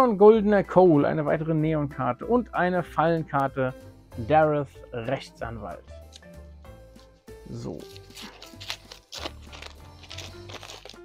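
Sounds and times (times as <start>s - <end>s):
background music with held notes: 0.0s - 11.0s
foil wrapper crinkling and tearing: 7.7s - 11.0s
cards sliding out: 7.9s - 11.0s.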